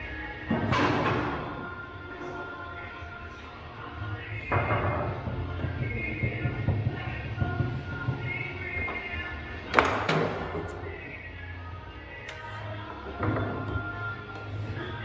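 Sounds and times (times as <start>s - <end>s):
background music with steady beat: 0.0s - 15.0s.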